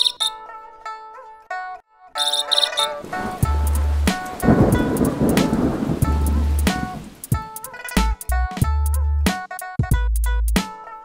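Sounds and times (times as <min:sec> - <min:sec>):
plucked-string background music: 0:00.0 - 0:11.0
thunder rumble: 0:03.0 - 0:07.3
rain hiss: 0:03.0 - 0:07.5.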